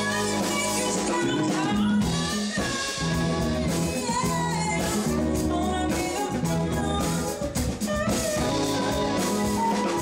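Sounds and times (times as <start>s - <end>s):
drum kit: 0.0s - 10.0s
electric guitar: 0.0s - 10.0s
woman singing lead: 0.0s - 10.0s.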